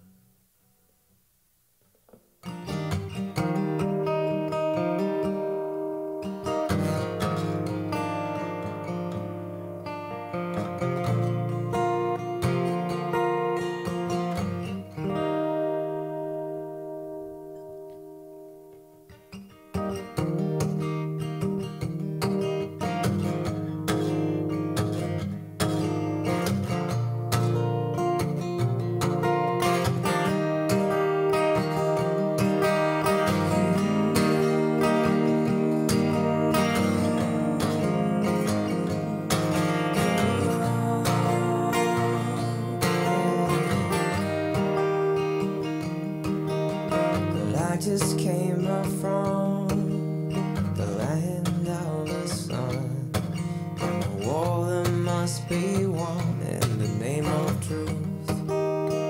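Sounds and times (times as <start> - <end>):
acoustic guitar strumming: 1.8 - 59.0.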